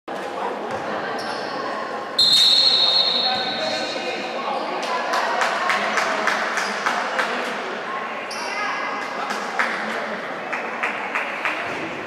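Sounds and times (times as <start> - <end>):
voices in hall: 0.1 - 12.0.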